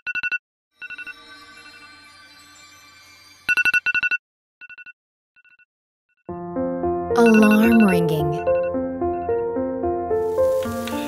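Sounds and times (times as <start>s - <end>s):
phone alarm beeping: 7.2s - 8.8s.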